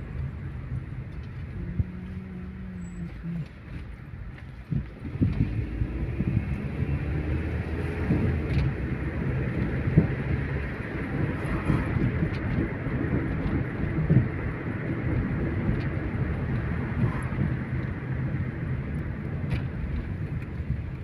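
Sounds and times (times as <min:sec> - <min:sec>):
car engine hum: 0:00.0 - 0:21.0
road rumble: 0:00.0 - 0:21.0.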